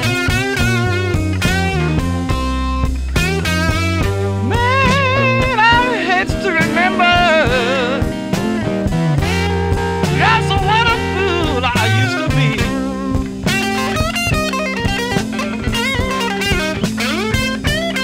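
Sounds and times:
backing band with drums: 0.0s - 18.0s
electric blues guitar lead: 0.0s - 18.0s.

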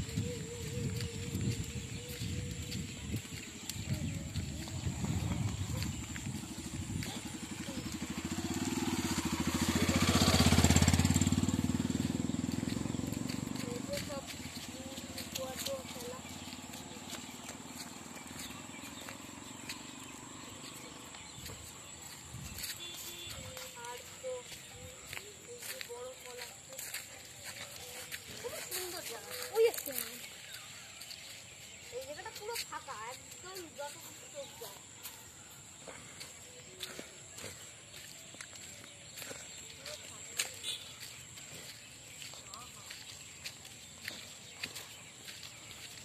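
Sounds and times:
vehicle passing on gravel road: 0.0s - 46.0s.

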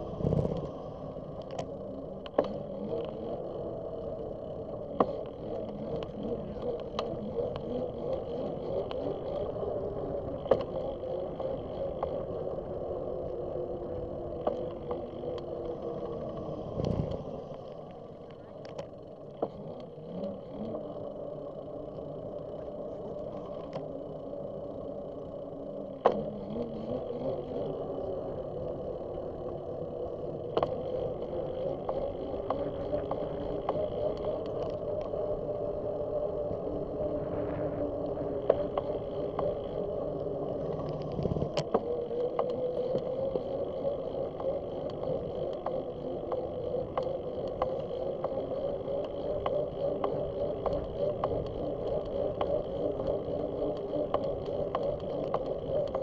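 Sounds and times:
bicycle tyres and drivetrain hum: 0.0s - 56.0s.

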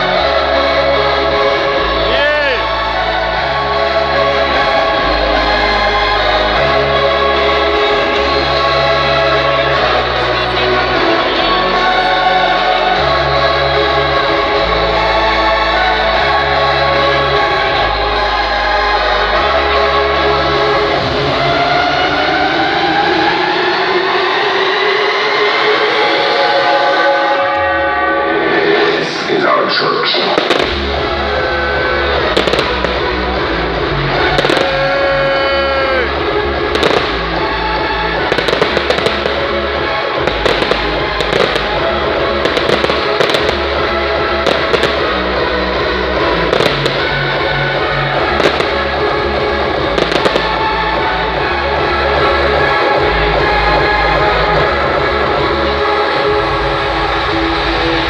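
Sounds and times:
electronic dance music: 0.0s - 15.1s, 16.5s - 58.0s
fireworks bangs: 30.2s - 33.3s, 34.2s - 35.0s, 36.7s - 37.6s, 38.2s - 45.2s, 46.5s - 47.2s, 48.2s - 50.8s.

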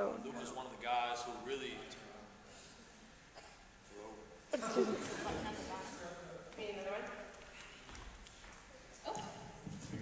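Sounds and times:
faint voices in a hall: 0.0s - 10.0s.

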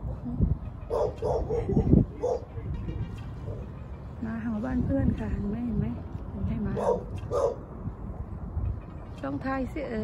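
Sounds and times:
dog barking: 0.9s - 2.5s, 6.8s - 7.6s.

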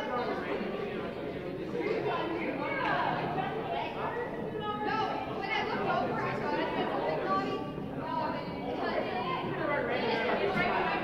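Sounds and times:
crowd chatter in a large hall: 0.0s - 11.0s.

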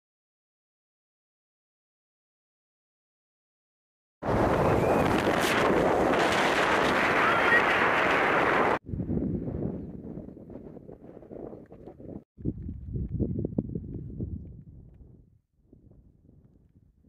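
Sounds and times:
wind buffeting microphone: 4.2s - 17.0s.

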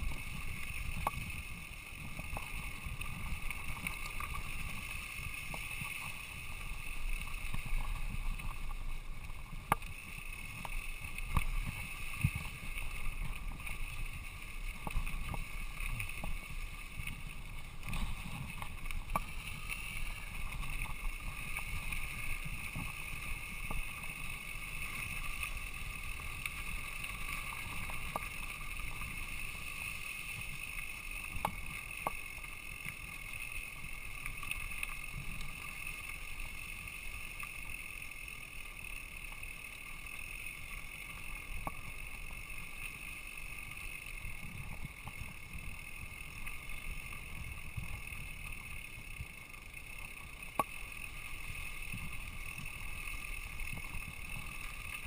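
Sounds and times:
bike tyres rumbling on dirt: 0.0s - 24.8s.

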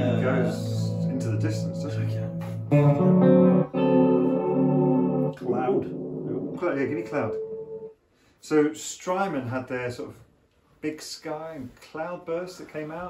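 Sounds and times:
electric guitar chords with reverb: 0.0s - 7.9s.

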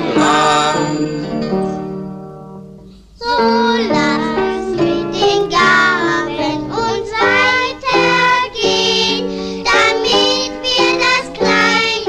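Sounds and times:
plucked string chord: 0.0s - 3.0s.

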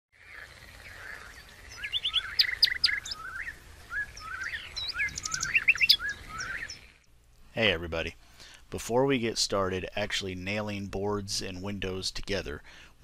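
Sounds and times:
songbirds chirping and singing: 0.2s - 7.1s.

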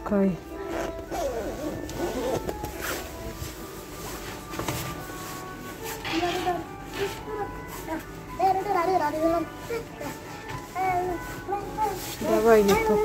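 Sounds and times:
store background music: 0.0s - 13.0s
padded jacket rustling: 0.6s - 13.0s
child's voice: 6.1s - 13.0s.

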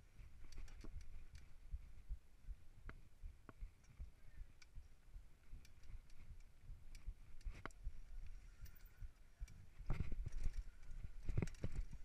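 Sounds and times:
wind on camera: 0.0s - 12.0s
bike knocks and rattles: 9.8s - 12.0s.

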